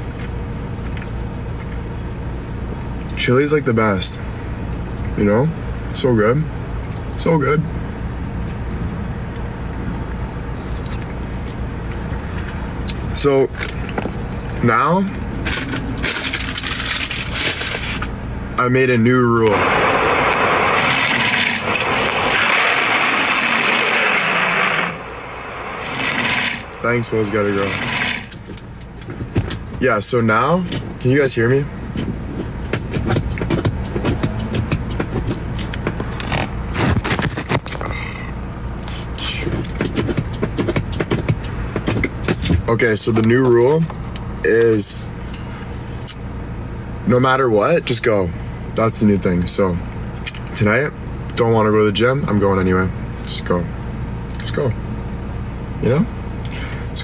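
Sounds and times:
low rumble: 0:04.3 - 0:38.8
phone handling scrapes and clicks: 0:35.6 - 0:37.8.

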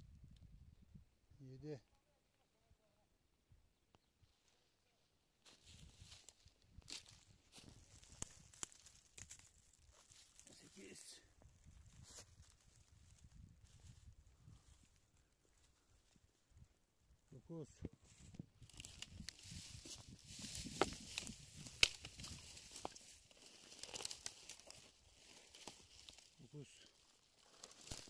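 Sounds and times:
dry leaves rustling and crackling: 0:05.4 - 0:11.2, 0:18.6 - 0:28.0.

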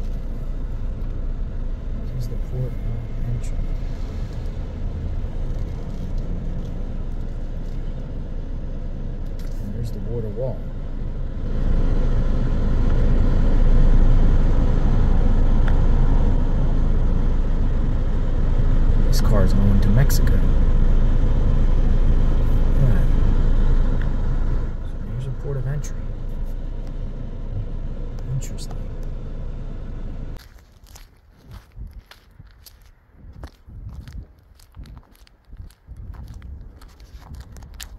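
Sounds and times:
car road and engine rumble: 0:00.0 - 0:37.9
footsteps on pavement: 0:30.4 - 0:37.9.

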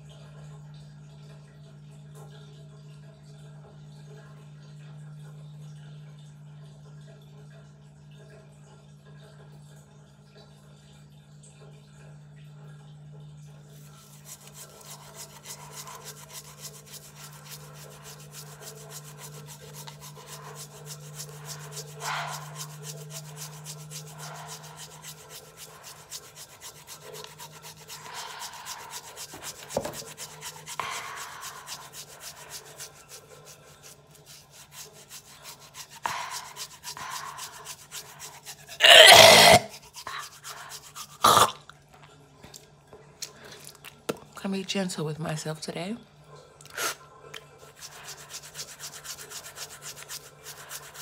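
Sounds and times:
toothbrush scrubbing a tongue: 0:13.7 - 0:41.6, 0:47.6 - 0:51.0.

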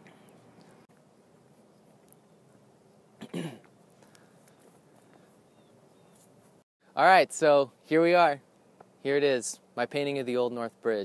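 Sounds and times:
faint outdoor background: 0:00.0 - 0:11.0
man clearing his throat: 0:03.2 - 0:03.7.

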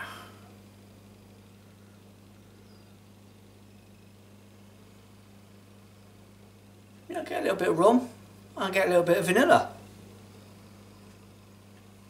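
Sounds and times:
faint low hum with hiss: 0:00.0 - 0:12.0.

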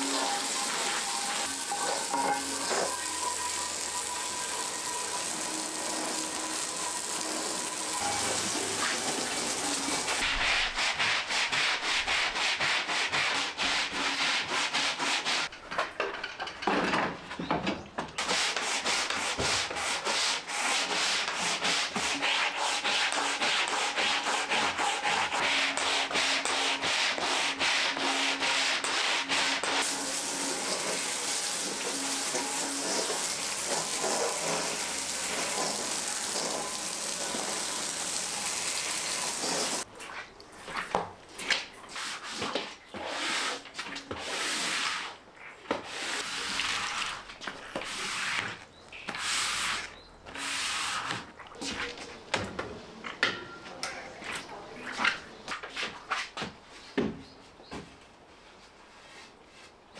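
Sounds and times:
brush scrubbing wet tiles: 0:00.0 - 0:15.5, 0:18.2 - 0:52.2.

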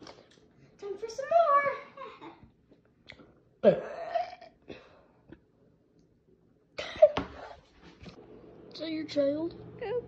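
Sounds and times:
person burping: 0:03.6 - 0:04.9.

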